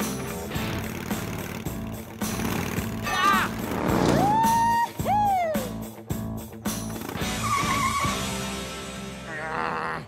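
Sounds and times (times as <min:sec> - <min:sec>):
cartoon background music: 0:00.0 - 0:10.0
wavering tyre squeal: 0:07.3 - 0:08.4.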